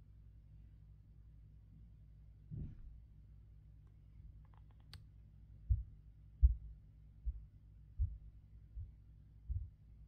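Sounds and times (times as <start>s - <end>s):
faint low rumble: 0.0s - 10.0s.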